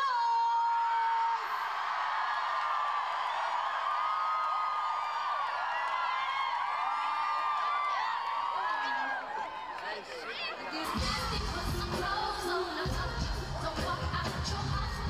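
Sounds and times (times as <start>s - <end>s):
crowd screaming and cheering: 0.0s - 15.0s.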